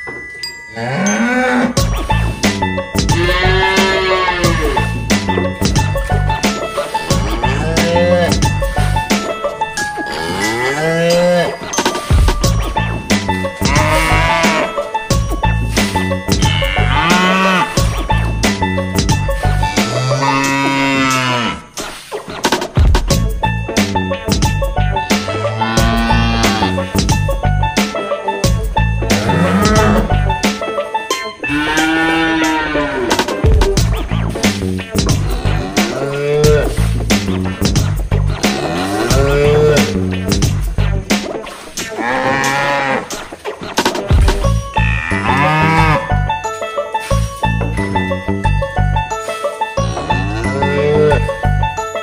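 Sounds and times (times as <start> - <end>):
background music: 0.0 - 52.0
cow mooing: 0.7 - 1.8, 3.1 - 5.1, 7.0 - 8.6, 10.0 - 11.7, 13.6 - 14.8, 16.4 - 18.0, 19.6 - 21.7, 25.2 - 26.9, 29.1 - 30.2, 31.4 - 33.2, 35.1 - 36.8, 38.4 - 40.0, 42.0 - 43.1, 44.7 - 46.2, 49.8 - 51.3.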